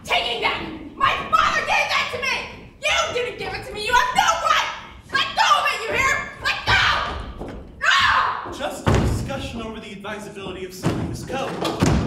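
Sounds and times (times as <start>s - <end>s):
heavy thumps on stage floor: 8.5s - 9.6s, 10.5s - 12.0s.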